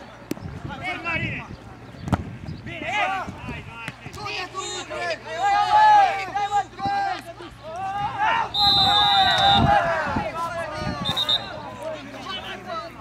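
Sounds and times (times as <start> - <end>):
players' voices calling out: 2.6 - 13.0
referee's pea whistle blasts: 8.5 - 9.7, 11.0 - 11.6.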